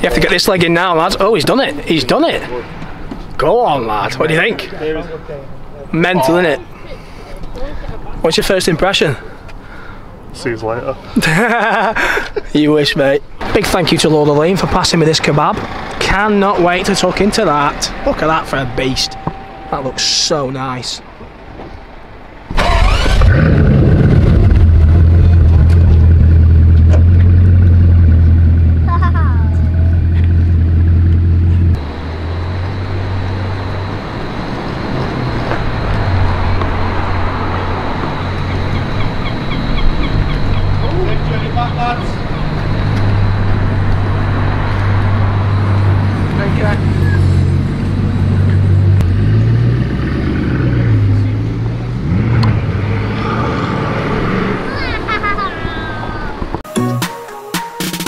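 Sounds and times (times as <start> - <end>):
car driving revving: 13.4 - 21.7, 22.4 - 56.6.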